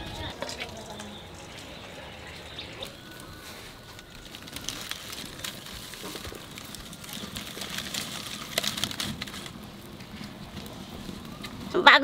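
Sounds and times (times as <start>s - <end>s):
faint birds: 0.0s - 12.0s
light clicks and crackles: 2.8s - 11.7s.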